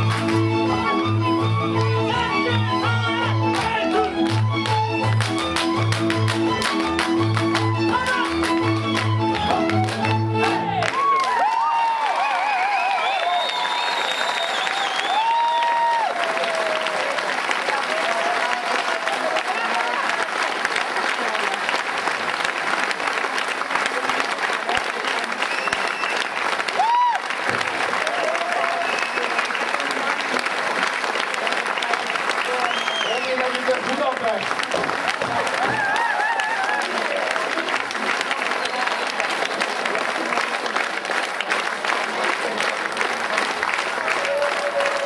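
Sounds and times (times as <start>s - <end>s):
audience applauding: 0.0s - 45.0s.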